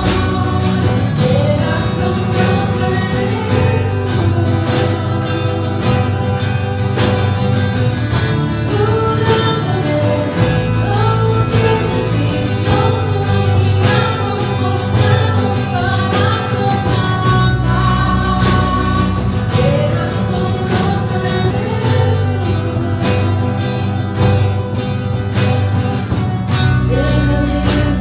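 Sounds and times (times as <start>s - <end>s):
woman singing: 0.0s - 7.4s, 8.4s - 24.6s, 26.6s - 28.0s
electric guitar: 0.0s - 28.0s
steady drum beat: 0.0s - 28.0s
strummed acoustic guitar: 0.0s - 28.0s.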